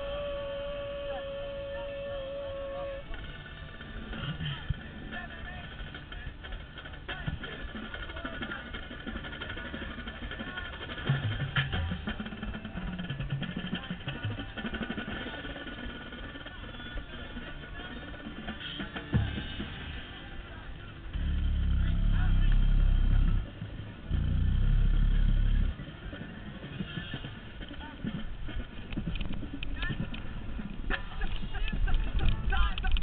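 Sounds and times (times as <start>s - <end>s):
brass corps playing: 0.0s - 3.8s
distant voices: 0.0s - 33.0s
low wind rumble: 0.0s - 33.0s.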